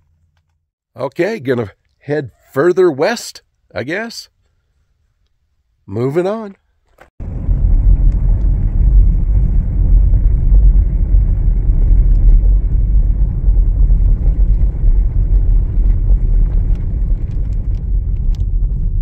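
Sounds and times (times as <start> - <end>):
car rumbling on dirt road: 7.2 - 19.0.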